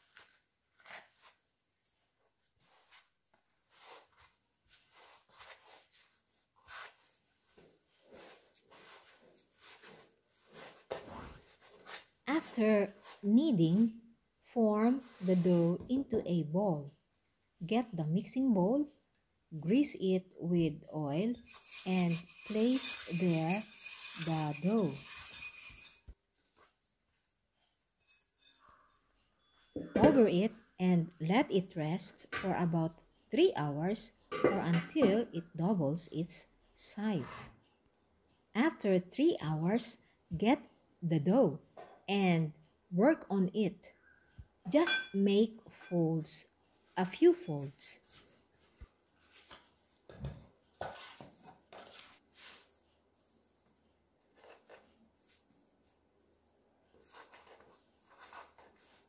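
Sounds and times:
woman's voice: 12.3 - 17.0, 17.6 - 25.0, 29.9 - 37.6, 38.6 - 43.9, 44.7 - 48.0.

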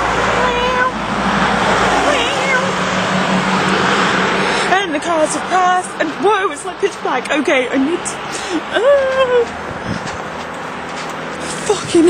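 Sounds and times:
cars passing on road: 0.0 - 12.0.

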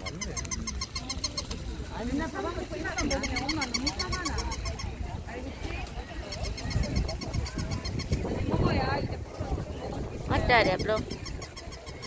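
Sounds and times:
rapid high-pitched chirping: 0.0 - 5.1, 6.2 - 8.6, 10.4 - 12.0
people chattering: 0.0 - 12.0.

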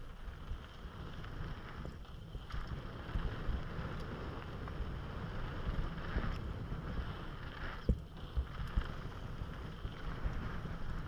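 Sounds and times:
bike tyres rolling on gravel: 0.0 - 11.0
wind rushing over microphone: 0.0 - 11.0.

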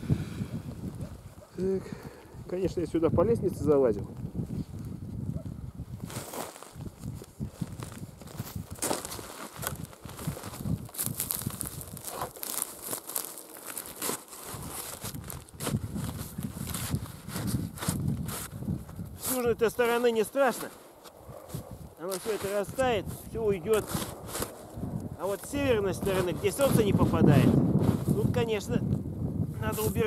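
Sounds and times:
boots crunching on snowy hay: 7.5 - 18.6, 19.2 - 23.0.

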